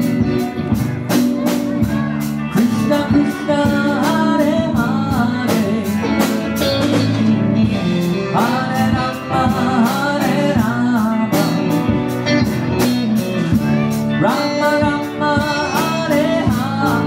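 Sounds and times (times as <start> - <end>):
person singing: 0.0 - 17.0
sustained instrumental chords: 0.0 - 17.0.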